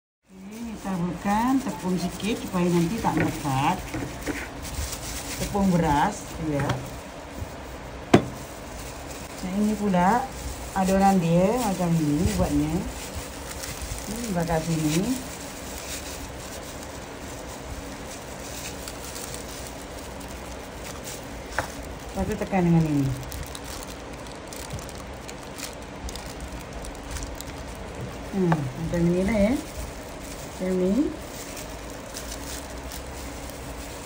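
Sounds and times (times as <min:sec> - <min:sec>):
rustling of plastic gloves and bag: 0:00.2 - 0:34.0
faint steady hum: 0:00.3 - 0:34.0
steady background hiss: 0:00.3 - 0:34.0.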